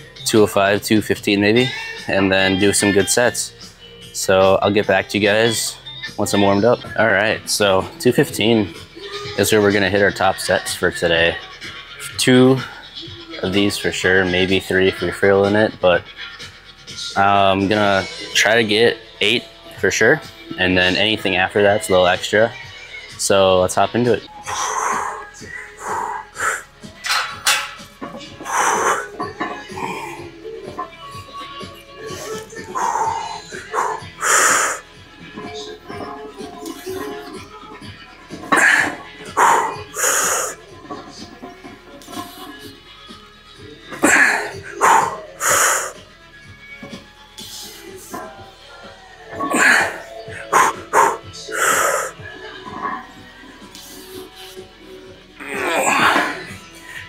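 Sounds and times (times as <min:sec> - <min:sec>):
background music: 0:00.0 - 0:57.0
weightlifter breathing and grunting: 0:24.4 - 0:30.8, 0:32.0 - 0:35.0, 0:38.4 - 0:40.7, 0:43.9 - 0:46.1, 0:47.4 - 0:52.5, 0:55.4 - 0:57.0.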